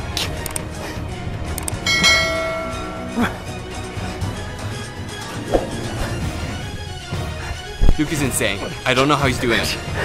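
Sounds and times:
bell ringing: 1.8s - 3.6s.

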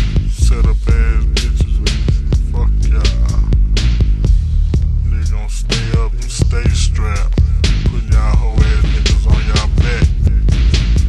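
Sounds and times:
deep bass line: 0.0s - 11.0s.

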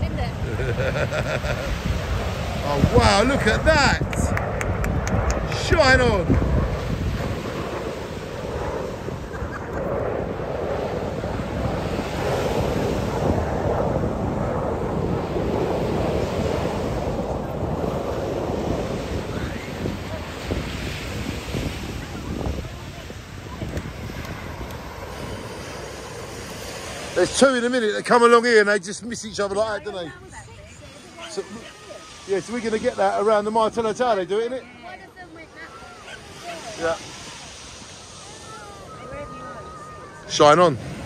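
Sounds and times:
distant jets roaring: 0.0s - 41.0s
wind buffeting microphone: 0.0s - 41.0s.

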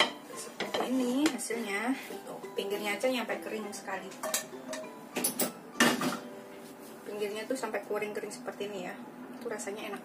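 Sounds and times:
kitchenware clinking: 0.0s - 1.4s, 4.1s - 6.3s.

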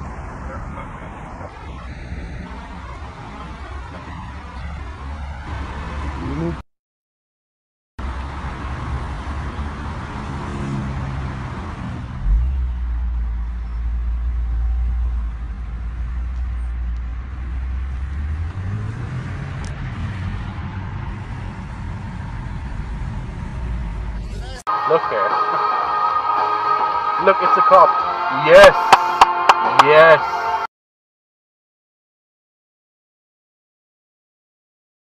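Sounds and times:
road traffic: 0.0s - 6.7s, 8.0s - 30.7s
person speaking: 27.2s - 30.6s.

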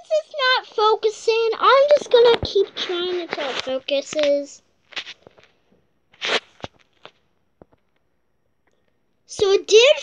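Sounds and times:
paper tag rustling: 1.9s - 5.5s.

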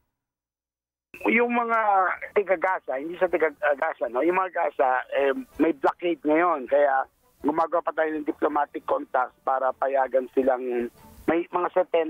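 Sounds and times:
man speaking over phone line: 1.2s - 12.0s.

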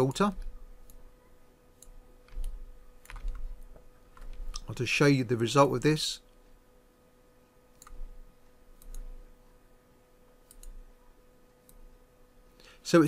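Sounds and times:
low electrical hum: 0.0s - 13.0s
faint computer mouse clicks: 7.7s - 8.0s, 8.8s - 9.1s, 10.4s - 10.8s.

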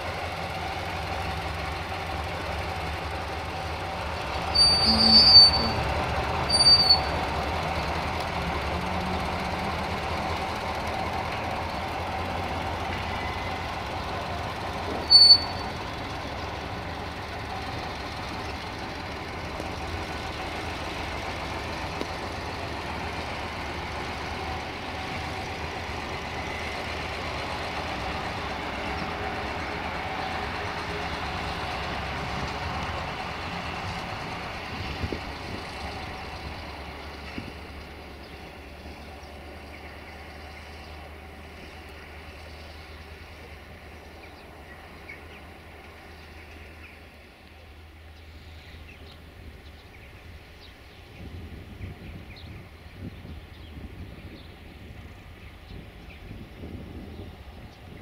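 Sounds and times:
diesel vehicle running: 0.0s - 58.0s
high-pitched horn toots: 4.6s - 7.1s.

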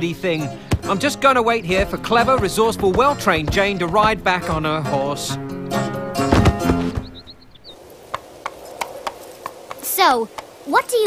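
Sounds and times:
horse hooves on rocky path: 0.7s - 11.0s.

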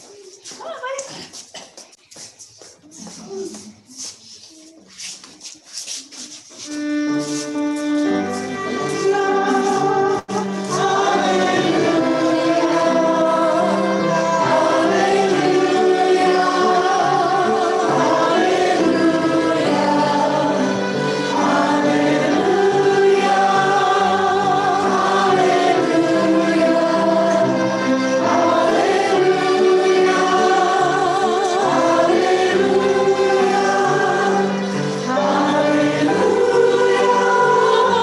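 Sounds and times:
choir singing held chords: 7.8s - 38.0s.

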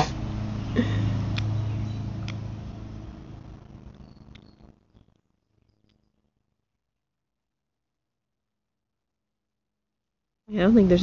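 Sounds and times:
steady low hum: 0.0s - 7.1s.

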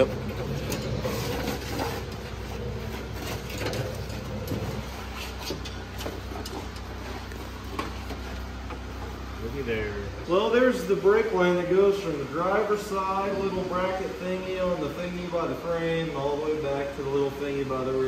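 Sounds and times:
metal line scraping and clicking: 0.0s - 7.4s
steady low hum: 0.0s - 18.0s.

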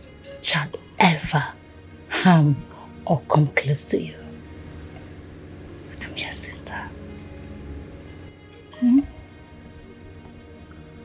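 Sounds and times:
soft background music: 0.0s - 11.0s
woman whispering: 6.0s - 7.0s.

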